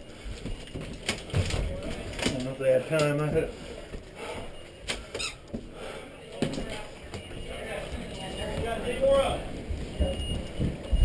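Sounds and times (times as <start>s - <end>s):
faint indistinct voices: 0.0s - 11.0s
knocks and clicks of people moving: 0.0s - 11.0s.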